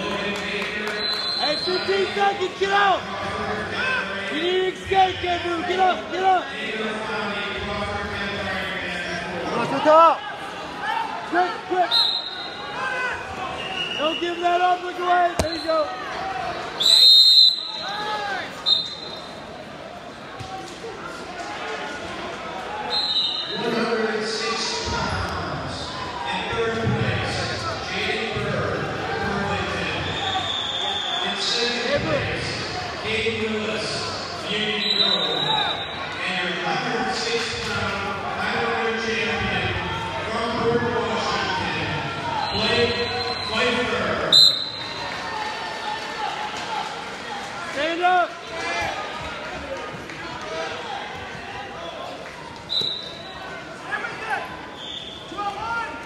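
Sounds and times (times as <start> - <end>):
crowd chatter and shouts: 0.0 - 56.0
referee's whistle blowing: 1.0 - 2.0, 11.9 - 12.8, 13.5 - 14.4, 16.8 - 18.0, 18.6 - 19.4, 22.9 - 23.7, 30.0 - 31.4, 34.7 - 36.1, 42.4 - 45.0, 52.7 - 53.5, 54.7 - 55.4
referee's whistle blast: 16.8 - 18.0, 44.3 - 45.0, 52.7 - 53.3.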